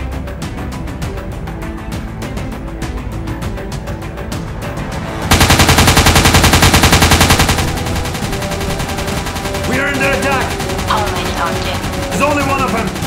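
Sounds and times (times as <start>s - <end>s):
automatic gunfire: 5.3s - 13.0s.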